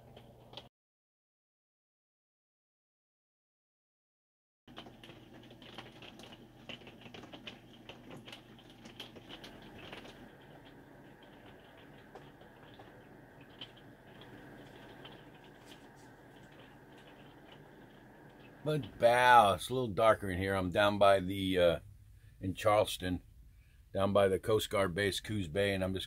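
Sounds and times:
small clicks and ticks: 0.0 - 0.7, 4.7 - 19.0
low steady hum: 4.7 - 26.0.

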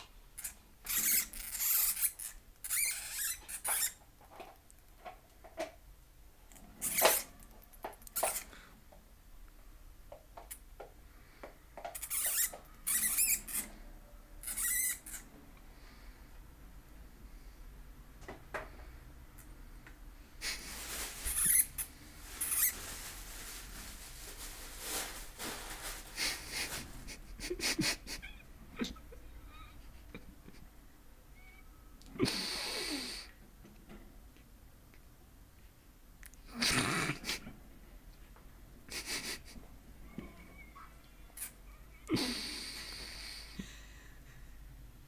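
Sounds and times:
hamsters squeaking and scuffling: 0.4 - 4.5, 6.7 - 8.5, 11.8 - 13.8, 14.4 - 15.3, 20.4 - 23.1.

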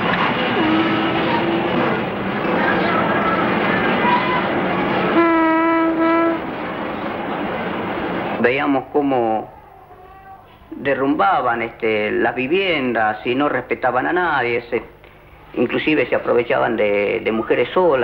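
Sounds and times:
diesel locomotive rumbling: 0.0 - 9.6
locomotive horn: 0.4 - 2.2, 2.8 - 6.6.

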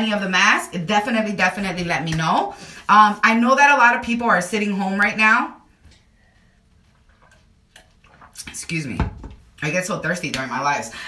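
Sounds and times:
woman sipping and swallowing: 6.8 - 8.4.

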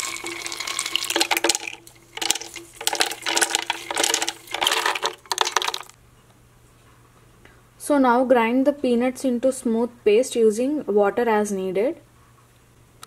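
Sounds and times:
peanuts rattling into plastic jar: 0.0 - 6.0.

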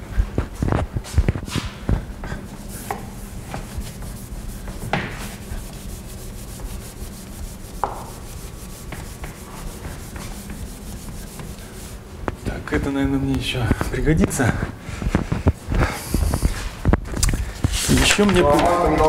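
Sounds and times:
cloth rubbing on blackboard: 2.5 - 12.1.

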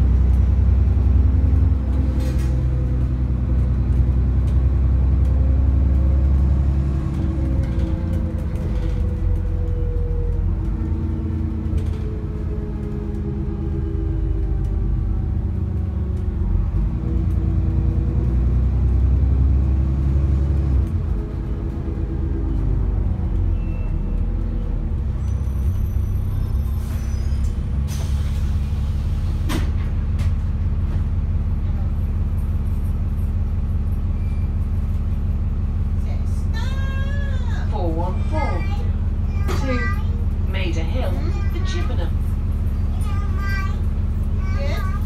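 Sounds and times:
bus engine humming: 0.0 - 45.0
air brake hiss: 26.8 - 29.5.

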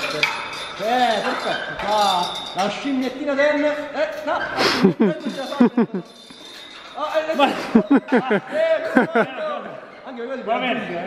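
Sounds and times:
background noise in large hall: 0.0 - 11.0.

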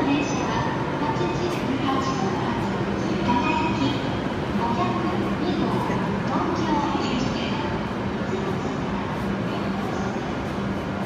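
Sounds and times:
train running noise: 0.0 - 11.0.

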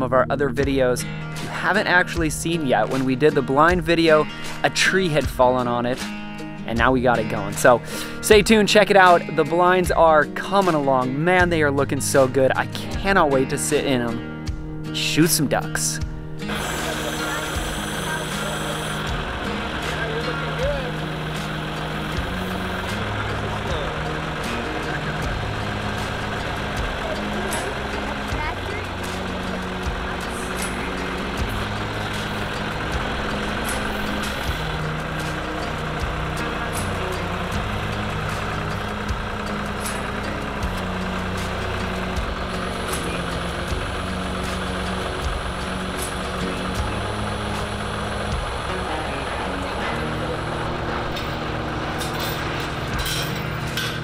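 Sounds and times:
background music: 0.0 - 54.0
tractor engine running: 0.6 - 54.0
loader handling metal grid: 48.6 - 54.0.

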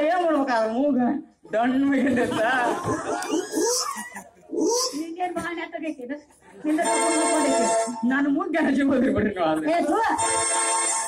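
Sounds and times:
person's voice through microphone: 6.6 - 10.2.

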